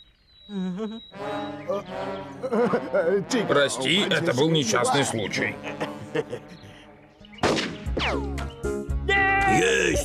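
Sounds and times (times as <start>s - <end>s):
background music with low notes: 1.1s - 10.0s
cartoon gunshot bang: 7.4s - 8.2s.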